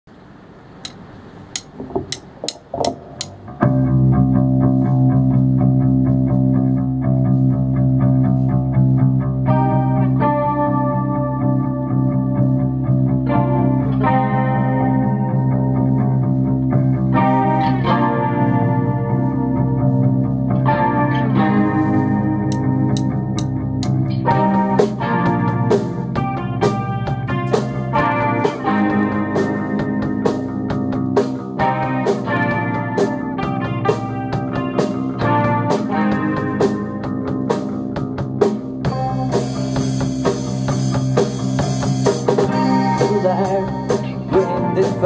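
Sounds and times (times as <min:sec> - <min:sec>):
distorted electric guitar chords: 0:00.3 - 0:45.0
sharp clicks: 0:00.8 - 0:03.4
bass guitar: 0:00.8 - 0:45.0.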